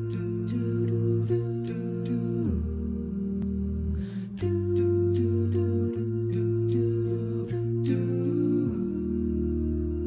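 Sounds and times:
a cappella vocal ensemble singing: 0.0s - 10.0s.

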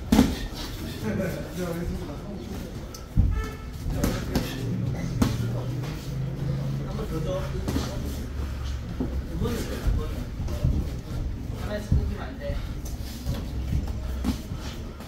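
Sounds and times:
boxing gloves slapping: 0.0s - 0.6s
people talking: 0.8s - 2.9s, 3.9s - 15.0s.

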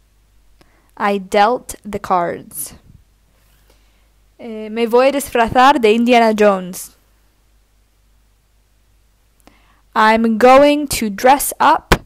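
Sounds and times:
soft intake of breath: 0.6s - 1.0s, 3.4s - 4.2s, 9.4s - 9.9s
person speaking: 1.0s - 2.9s, 4.4s - 7.0s.

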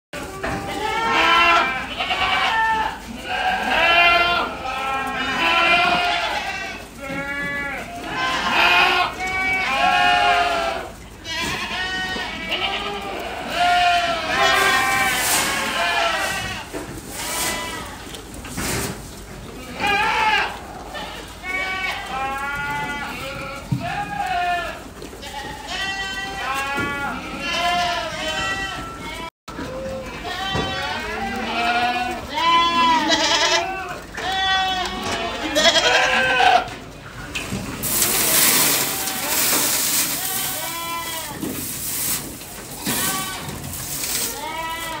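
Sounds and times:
goats bleating: 0.2s - 18.3s, 19.5s - 45.0s.

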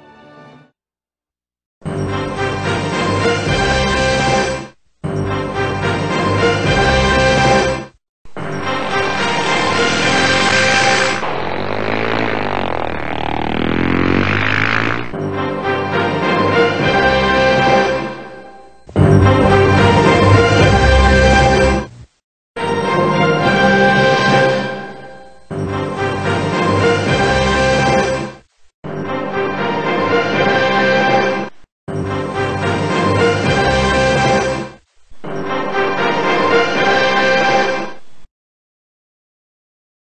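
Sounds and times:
logo fanfare music: 8.6s - 11.2s, 19.0s - 21.9s
logo music: 19.0s - 22.1s.

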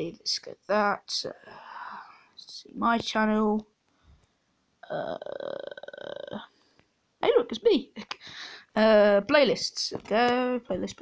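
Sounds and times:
person saying uhhh: 4.8s - 6.5s.

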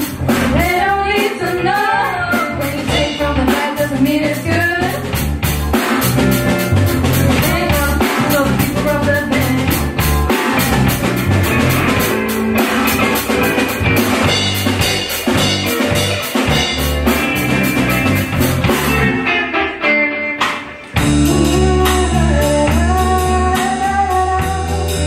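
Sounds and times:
drum kit beat: 0.0s - 25.0s
electric bass: 0.0s - 25.0s
electric guitars: 0.0s - 25.0s.

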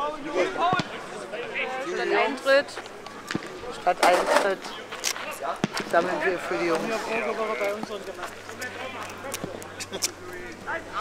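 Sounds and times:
distant voices: 0.0s - 11.0s.

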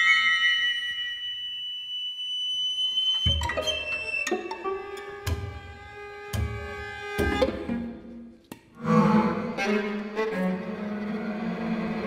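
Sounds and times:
chamber ensemble music: 3.1s - 12.0s.

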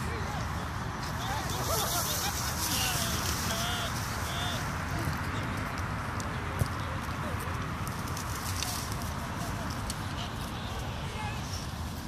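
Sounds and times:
dry grass rustling: 0.0s - 12.0s.

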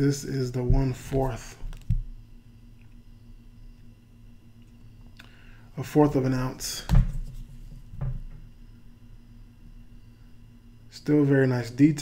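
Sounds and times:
handling thumps: 0.6s - 2.1s.

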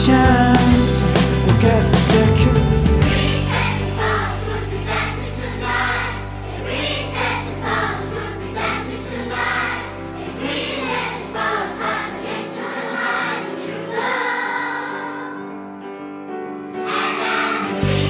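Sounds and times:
choir-like group singing: 0.6s - 15.7s, 16.8s - 18.0s.

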